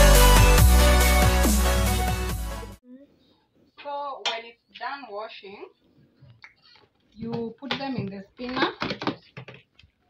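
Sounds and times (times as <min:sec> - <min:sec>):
woman speaking: 0:03.8 - 0:05.8, 0:07.1 - 0:09.0.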